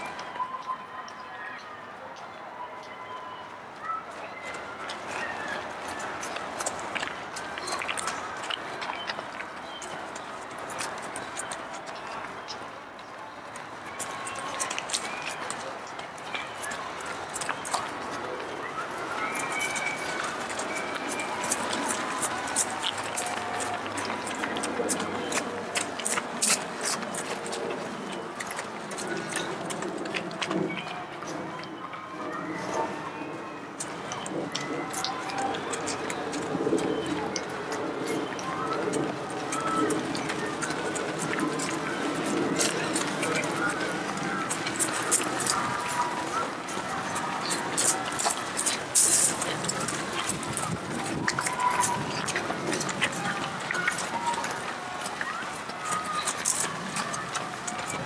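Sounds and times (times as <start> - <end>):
indistinct voices calling: 0.0 - 58.0
runners' footfalls on gravel: 2.2 - 58.0.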